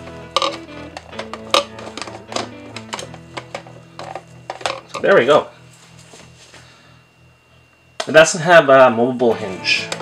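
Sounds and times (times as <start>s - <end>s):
soft guitar music: 0.0s - 6.6s, 7.9s - 10.0s.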